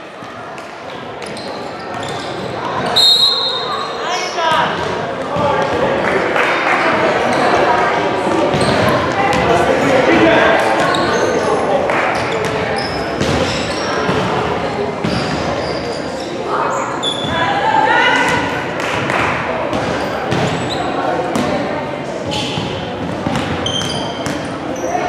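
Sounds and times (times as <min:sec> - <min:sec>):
shoes squeaking on court: 0:01.2 - 0:04.0, 0:08.5 - 0:09.4, 0:10.8 - 0:14.4, 0:15.0 - 0:17.4, 0:19.9 - 0:21.5, 0:22.2 - 0:25.0.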